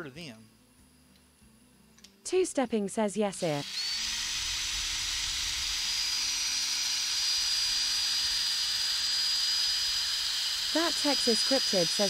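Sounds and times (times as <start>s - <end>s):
high whine of drill: 3.4s - 12.0s
sanding disc hissing on wood: 3.4s - 12.0s.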